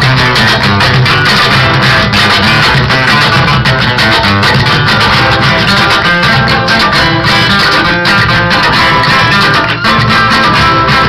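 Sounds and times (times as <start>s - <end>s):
plucked guitar: 0.0s - 11.0s.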